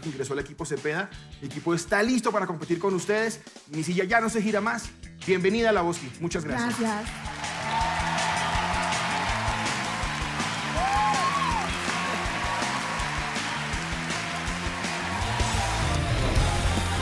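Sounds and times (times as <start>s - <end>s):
upbeat music with bass line: 0.0s - 17.0s.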